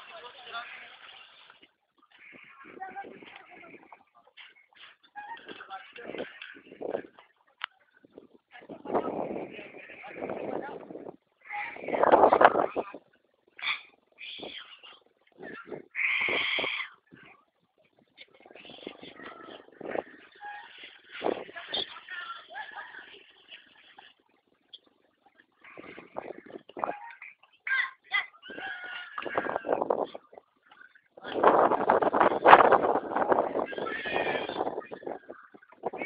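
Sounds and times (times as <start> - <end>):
players shouting and calling: 25.6 - 30.1.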